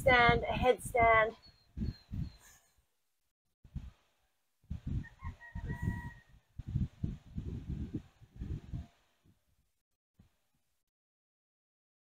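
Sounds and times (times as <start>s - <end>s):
wind gusting on microphone: 0.0s - 2.5s, 3.7s - 4.0s, 4.7s - 9.4s
distant rooster crowing: 5.0s - 6.5s.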